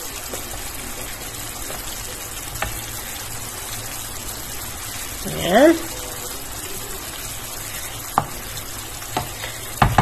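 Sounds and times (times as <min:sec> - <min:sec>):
food sizzling in a frying pan: 0:00.0 - 0:10.0
wooden spatula tapping a pan: 0:02.5 - 0:02.8, 0:08.1 - 0:08.5, 0:09.1 - 0:10.0.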